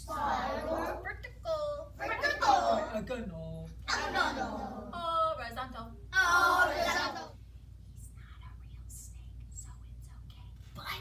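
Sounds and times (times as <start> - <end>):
low steady hum: 0.0 - 11.0
whispering and hushed voices: 7.8 - 11.0.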